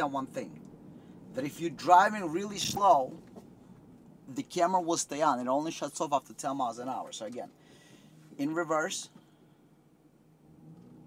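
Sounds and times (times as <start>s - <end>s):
vehicle engine idling hum: 0.0s - 11.0s.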